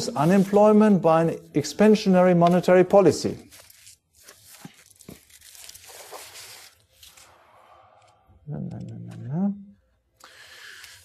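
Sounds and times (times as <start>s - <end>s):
paper pages rustling: 2.3s - 7.4s.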